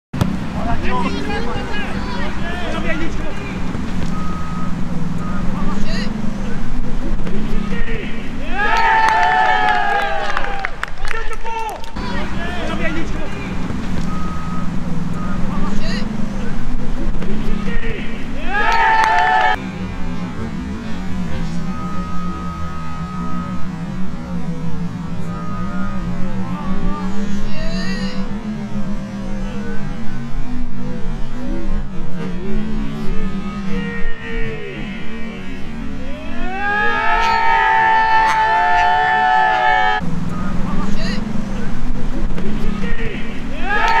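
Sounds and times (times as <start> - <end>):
players shouting: 7.6 - 13.5, 17.6 - 19.6, 33.3 - 40.0, 42.8 - 44.0.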